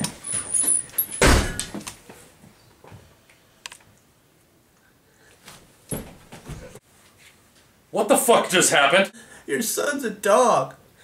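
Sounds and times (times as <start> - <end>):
heavy thump: 1.2 - 1.7
light knocks and shuffles: 5.4 - 7.8.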